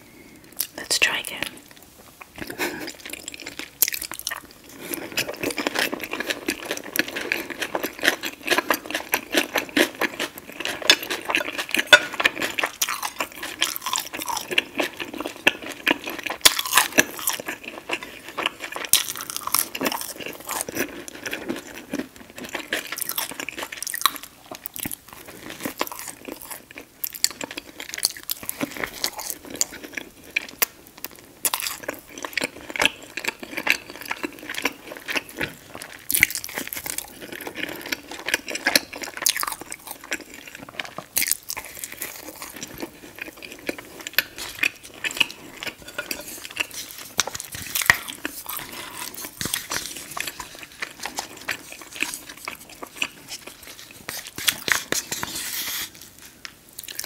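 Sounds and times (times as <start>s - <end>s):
chewing crunchy food: 0.5s - 57.0s.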